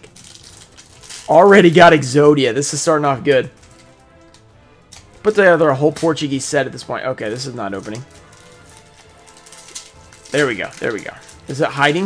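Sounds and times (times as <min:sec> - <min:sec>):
foil wrapper crinkling: 0:00.0 - 0:06.5, 0:07.2 - 0:12.0
quiet background music: 0:00.0 - 0:12.0.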